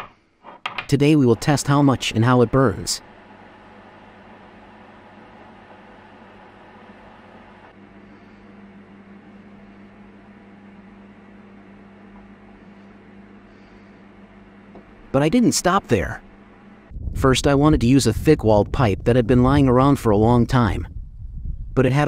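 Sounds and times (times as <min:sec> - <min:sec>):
low electrical hum: 0:00.0 - 0:22.0.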